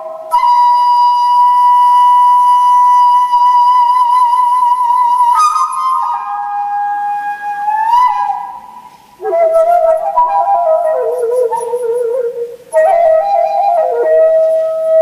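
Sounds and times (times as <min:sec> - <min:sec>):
flute playing slow notes: 0:00.0 - 0:15.0.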